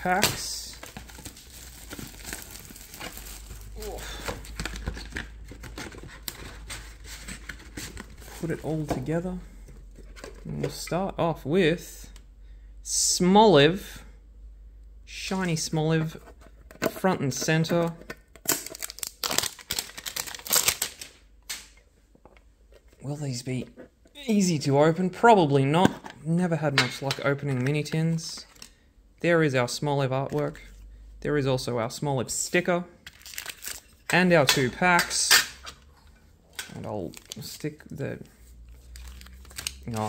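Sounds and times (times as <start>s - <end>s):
plastic wrap crinkling and tearing: 0.0s - 8.8s, 18.5s - 21.2s, 33.1s - 34.1s, 36.8s - 37.8s, 38.7s - 40.0s.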